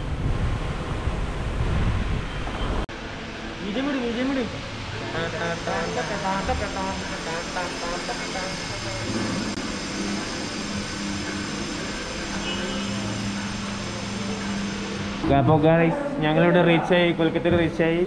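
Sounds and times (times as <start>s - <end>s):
large hall hum: 2.9s - 18.0s
voices: 3.6s - 9.5s.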